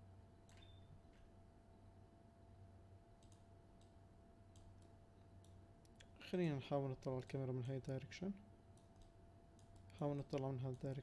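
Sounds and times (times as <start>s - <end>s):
low steady hum: 0.0s - 11.0s
computer mouse clicks: 3.2s - 6.1s, 8.7s - 11.0s.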